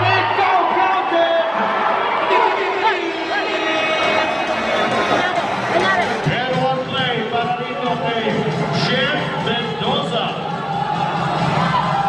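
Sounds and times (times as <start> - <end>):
man commentating: 0.0 - 4.3, 6.1 - 10.5
crowd murmur: 0.0 - 12.0.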